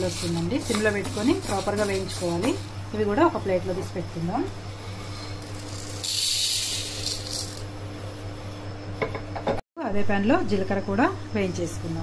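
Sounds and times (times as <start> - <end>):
grains rattling on metal plate: 0.0 - 2.6, 4.9 - 7.7.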